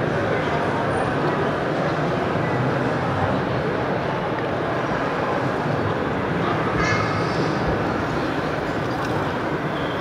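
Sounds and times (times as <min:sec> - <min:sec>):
busy exhibition hall noise: 0:00.0 - 0:10.0.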